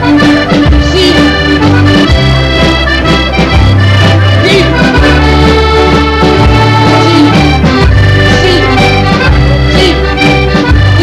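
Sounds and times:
accordion playing a waltz: 0.0 - 11.0.

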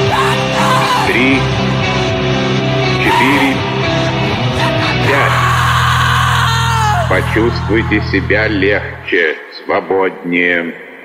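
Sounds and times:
low distorted guitar chord: 0.0 - 9.2
screamed vocal: 4.3 - 9.1.

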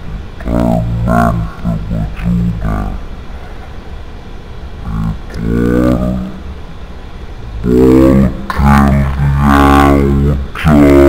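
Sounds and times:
man chanting low drawn-out notes: 0.0 - 3.4, 4.8 - 6.7, 7.4 - 11.0.

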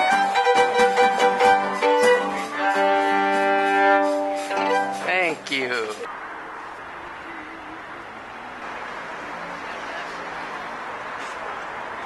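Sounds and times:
bowed violin notes: 0.0 - 6.0.

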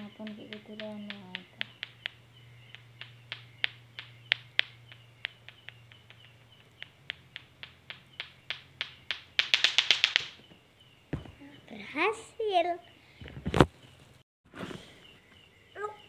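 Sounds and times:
plastic clacker balls knocking: 0.0 - 10.4.

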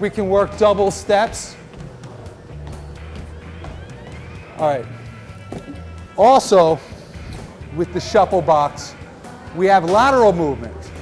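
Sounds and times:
low steady bass line: 2.0 - 6.2.

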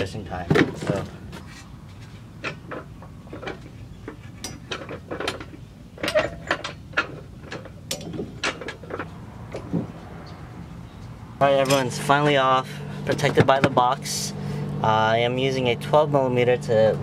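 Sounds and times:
metallic clicks and knocks: 2.4 - 10.4.

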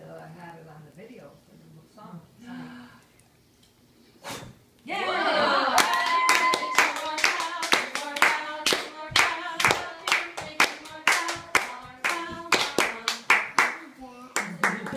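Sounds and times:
voices cheering: 4.9 - 7.2
people singing along: 5.1 - 13.5
group clapping in rhythm: 5.8 - 14.9.

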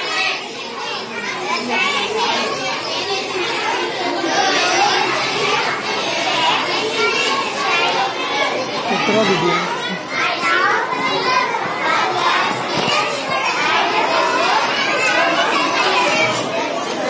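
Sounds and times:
girls chattering: 0.0 - 17.0.

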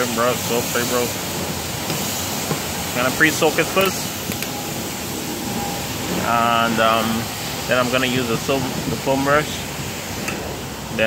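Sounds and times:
rushing hiss of car wash: 0.0 - 11.0.

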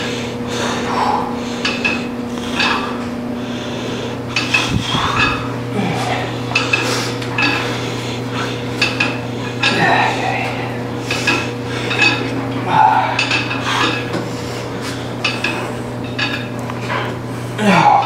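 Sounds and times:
steady electrical hum: 0.0 - 18.0
weight stack plates clanking: 1.4 - 3.1, 4.3 - 18.0.

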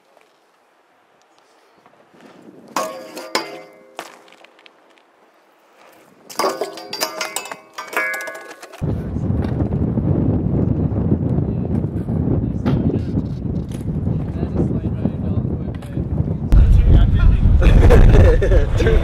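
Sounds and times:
bike grinding on metal rail: 2.8 - 4.4, 6.3 - 8.8
wind noise on microphone: 8.8 - 19.0.

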